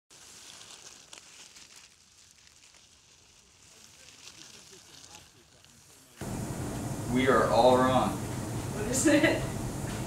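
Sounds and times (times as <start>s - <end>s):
light rustling and crackling: 0.1s - 6.2s.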